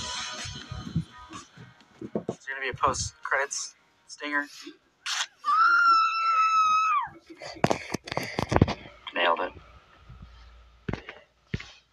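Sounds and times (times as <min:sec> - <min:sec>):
woman screaming: 0:05.4 - 0:07.2.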